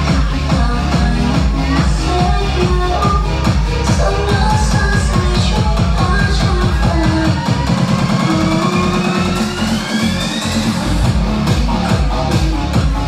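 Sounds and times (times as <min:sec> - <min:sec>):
dance remix with pounding bass: 0:00.0 - 0:13.0.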